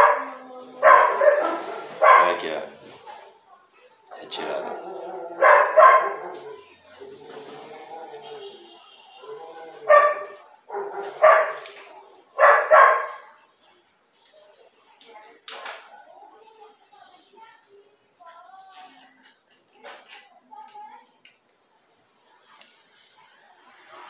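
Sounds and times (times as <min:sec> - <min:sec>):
dog barking: 0:00.0 - 0:02.5, 0:04.2 - 0:06.7, 0:08.2 - 0:13.4.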